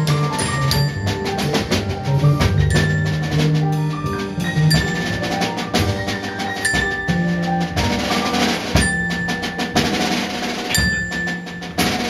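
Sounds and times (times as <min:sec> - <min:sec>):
drum kit beat: 0:00.0 - 0:12.0
mallet instrument notes: 0:00.0 - 0:12.0.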